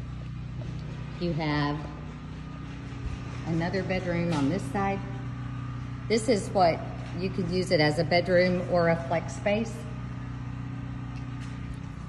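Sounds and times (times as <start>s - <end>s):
motor humming steadily: 0.0s - 12.0s.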